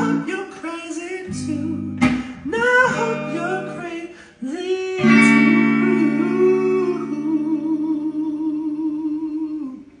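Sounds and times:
electric guitar chord: 1.3 - 4.0, 5.0 - 7.4.

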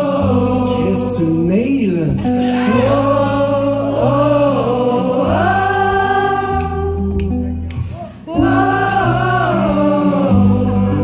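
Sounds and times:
audience singing along: 0.0 - 1.2, 2.4 - 7.4, 8.2 - 11.0
acoustic guitar: 0.0 - 11.0.

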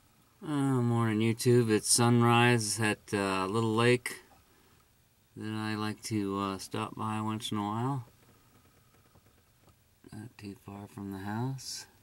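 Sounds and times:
faint background hiss: 0.0 - 12.0.

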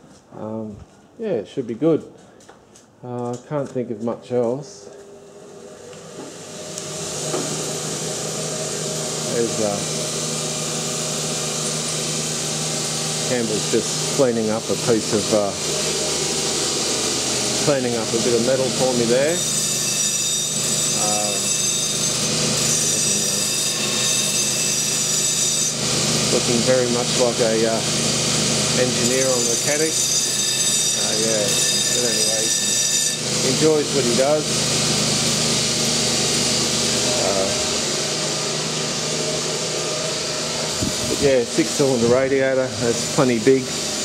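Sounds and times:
power tool whining on metal: 5.0 - 44.0
bench grinder grinding metal: 5.2 - 44.0.

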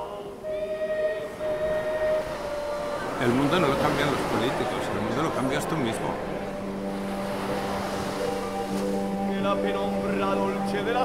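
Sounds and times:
held chord tone: 0.0 - 11.0.

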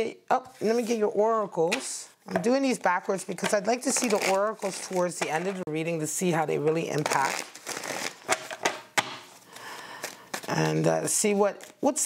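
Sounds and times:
cards rustling: 1.7 - 5.6, 6.9 - 11.9.

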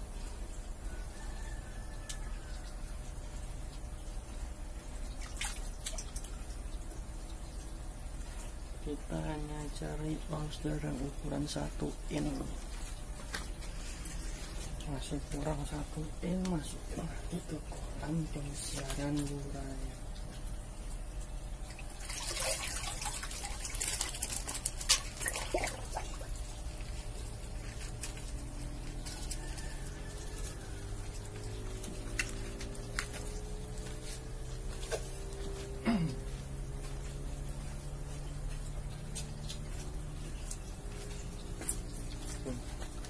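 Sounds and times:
water dripping into pond: 0.0 - 43.0
sharp water splash: 5.1 - 6.3, 21.7 - 26.4.

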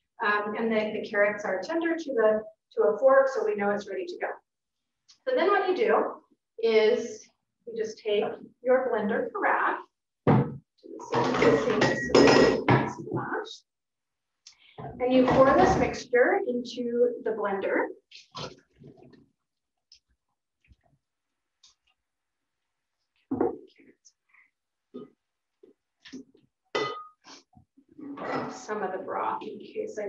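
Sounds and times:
glass and metal pot clinking: 11.1 - 13.0, 26.7 - 27.2.

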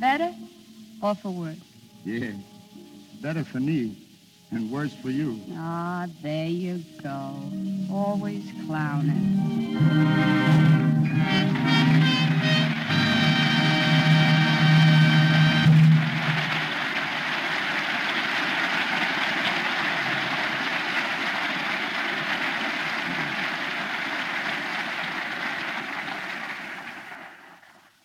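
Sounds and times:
orchestra holding chord: 6.9 - 16.8
audience applause: 10.5 - 28.0.

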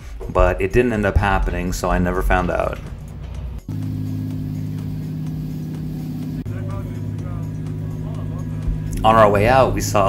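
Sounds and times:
boat engine droning: 2.4 - 10.0.

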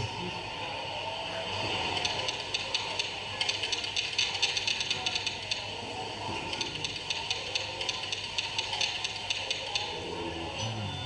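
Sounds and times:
steady background hum: 0.0 - 11.0
rapid irregular clicking and rattling: 1.6 - 10.0.

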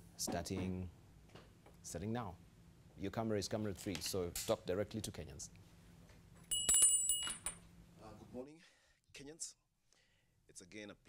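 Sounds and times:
small bell ringing: 6.5 - 7.6.

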